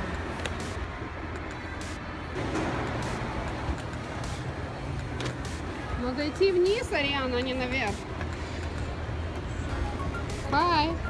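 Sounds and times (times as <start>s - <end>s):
indistinct mall background noise: 0.0s - 11.0s.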